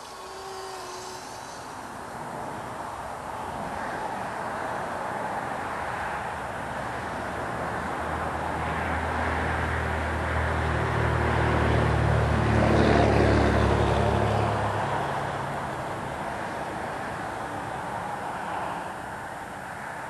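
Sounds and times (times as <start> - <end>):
steady hiss: 0.0 - 5.8
vehicle passing by: 0.0 - 17.3.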